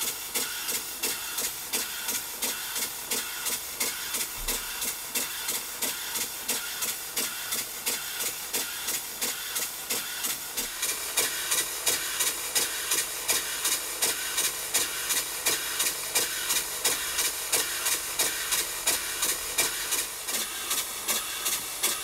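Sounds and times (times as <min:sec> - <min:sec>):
model steam engine exhaust hissing: 0:00.0 - 0:22.0.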